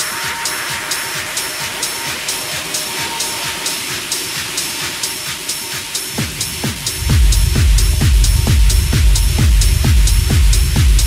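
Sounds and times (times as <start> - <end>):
hi-hat ticks: 0.0 - 11.0.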